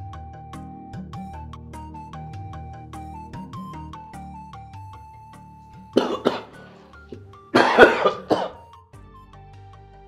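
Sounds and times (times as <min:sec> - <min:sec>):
quiet background music: 0:00.0 - 0:10.0
man coughing: 0:06.0 - 0:06.8, 0:07.6 - 0:08.6.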